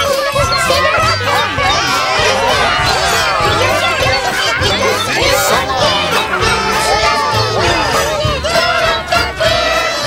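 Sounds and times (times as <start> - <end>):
backing music: 0.0 - 10.0
many voices singing and calling: 0.0 - 10.0.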